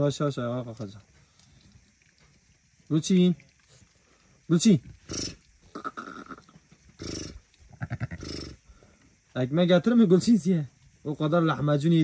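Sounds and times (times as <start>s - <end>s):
ewe making low rumbling calls: 7.0s - 8.6s.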